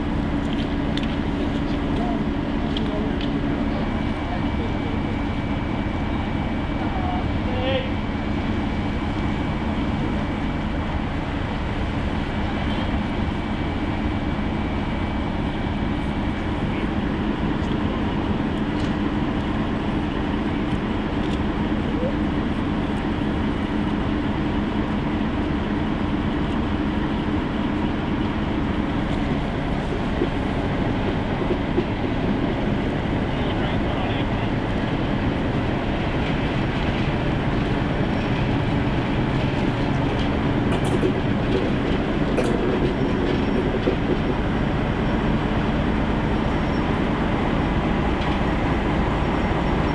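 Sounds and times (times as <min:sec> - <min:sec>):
diesel locomotive engine drone: 0:00.0 - 0:49.9.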